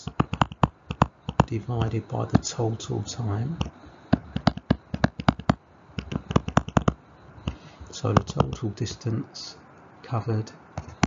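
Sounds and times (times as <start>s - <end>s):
stylus tapping tablet screen: 0.0s - 8.7s, 10.8s - 11.0s.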